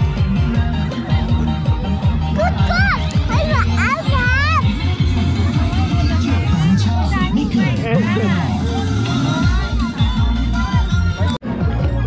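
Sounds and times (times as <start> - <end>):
music with deep bass beat: 0.0 - 12.0.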